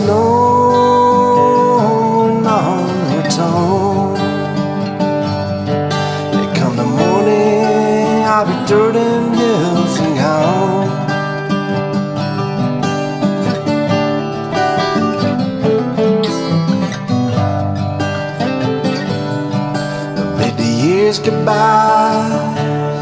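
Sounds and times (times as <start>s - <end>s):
acoustic guitars playing country-folk: 0.0s - 23.0s
guitar picking lead melody: 0.0s - 23.0s.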